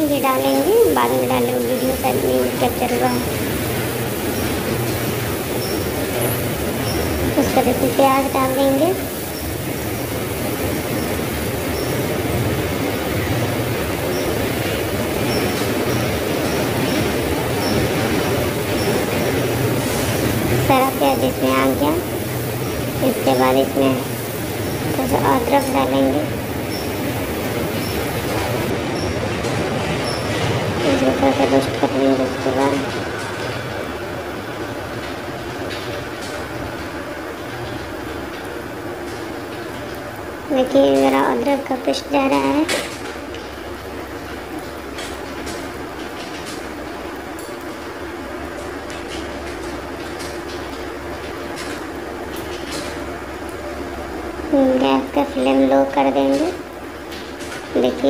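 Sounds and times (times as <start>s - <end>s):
onions sizzling in hot oil: 19.8s - 28.6s.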